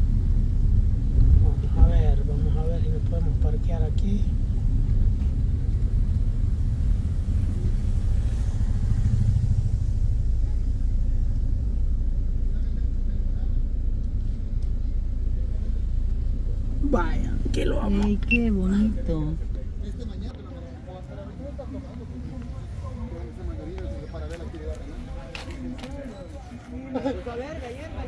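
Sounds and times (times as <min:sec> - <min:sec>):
car engine and tyres rumbling: 0:00.0 - 0:28.0.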